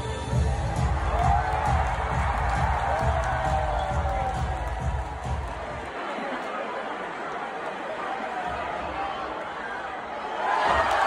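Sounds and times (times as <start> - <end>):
entrance music over loudspeakers: 0.0 - 5.9
crowd cheering: 0.3 - 11.0.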